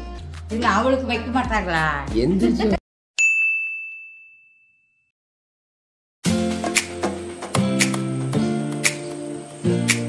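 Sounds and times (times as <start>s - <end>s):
bell-like ding: 3.2s - 5.1s.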